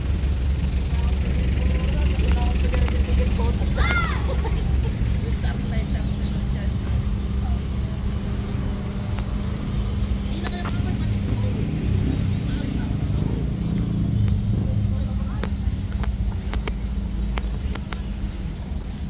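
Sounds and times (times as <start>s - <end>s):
low hum of vehicle engines: 0.0s - 19.0s
people's voices: 0.0s - 19.0s.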